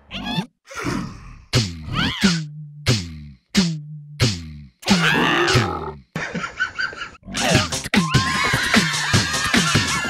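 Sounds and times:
upbeat music with steady beat: 1.6 - 4.6, 7.4 - 10.0.

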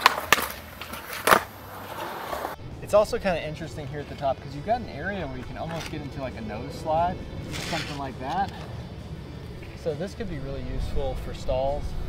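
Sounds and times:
skateboard landing on concrete: 0.0 - 2.6
skateboard pop: 0.0 - 2.6
skateboard wheels rolling: 0.0 - 2.6.

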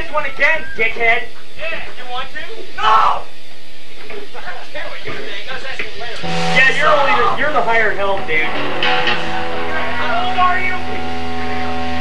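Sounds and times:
guitar amplifier hum: 0.0 - 12.0
held low tone: 6.2 - 12.0.

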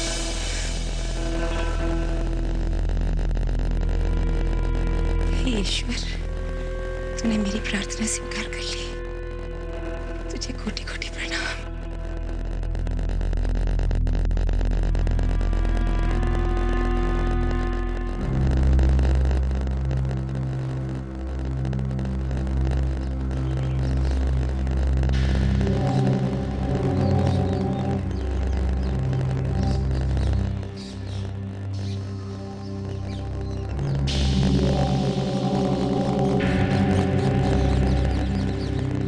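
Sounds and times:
deep sustained drone: 0.0 - 39.0
held synthesizer chords: 14.2 - 39.0.

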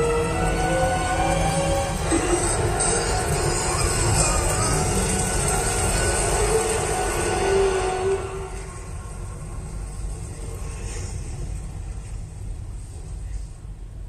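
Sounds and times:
dramatic film music through speakers: 0.0 - 13.3
deep rumble: 0.0 - 14.0.

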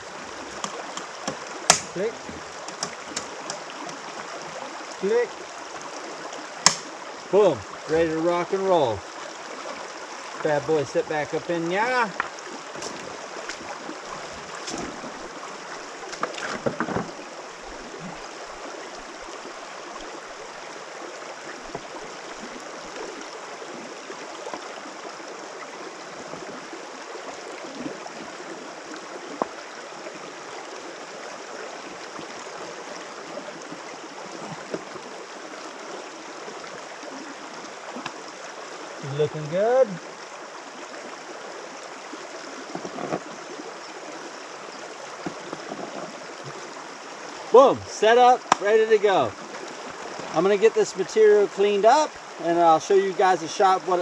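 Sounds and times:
stream running over stones: 0.0 - 54.0
sharp knocks: 0.5 - 2.0, 6.6 - 6.9.

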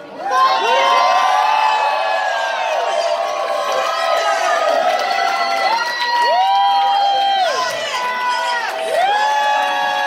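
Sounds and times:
audience cheering and whooping: 0.1 - 10.0.

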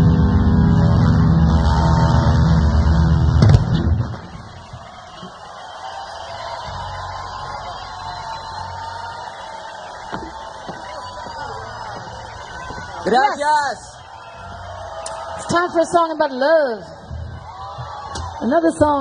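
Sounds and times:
rock band final crashing hit: 0.0 - 4.9
crowd cheering and whistling: 0.0 - 19.0.

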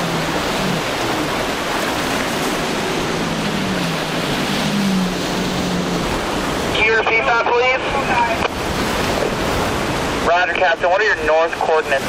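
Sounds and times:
waves breaking: 0.0 - 12.0.

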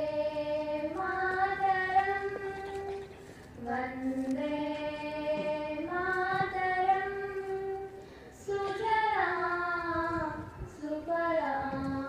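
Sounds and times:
voices singing a slow song: 0.0 - 12.0
breath: 8.0 - 8.4.

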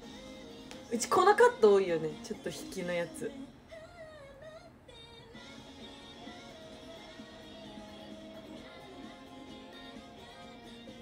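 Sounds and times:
woman singing on television: 0.0 - 11.0.

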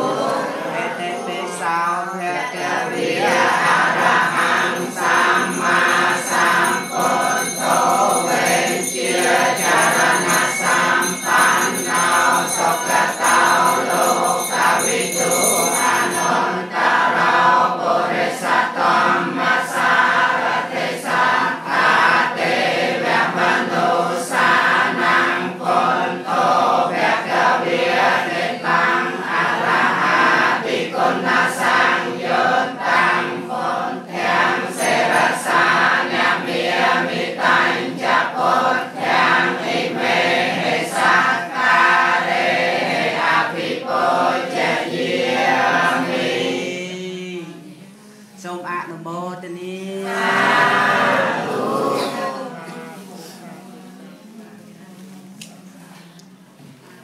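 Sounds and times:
group chanting in unison: 0.0 - 48.5, 49.3 - 54.0.

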